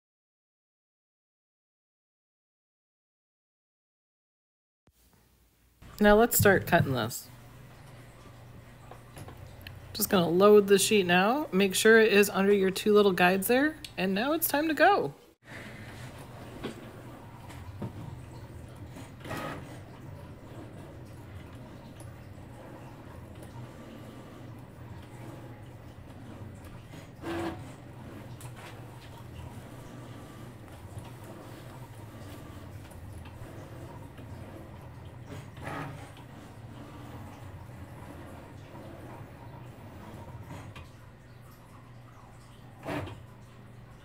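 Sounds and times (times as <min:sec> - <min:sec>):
machine whirring: 0:15.5 - 0:41.8.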